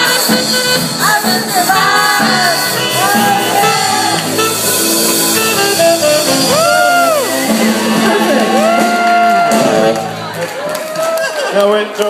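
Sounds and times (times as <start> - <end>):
drum kit: 0.0 - 11.2
band playing music: 0.0 - 11.9.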